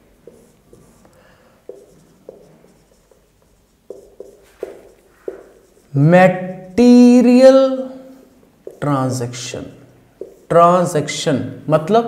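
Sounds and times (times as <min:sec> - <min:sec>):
marker pen writing on whiteboard: 0:00.0 - 0:11.3
marker tip tapping: 0:01.7 - 0:03.2, 0:03.9 - 0:05.8, 0:08.6 - 0:09.0, 0:10.2 - 0:10.5.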